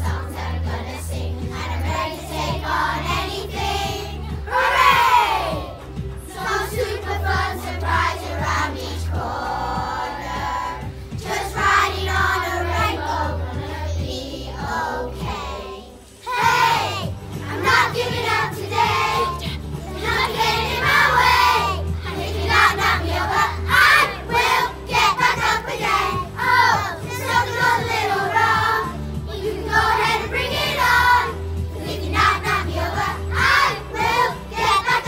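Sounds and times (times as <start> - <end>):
children's choir singing: 0.0 - 35.0
low musical accompaniment: 0.0 - 35.0.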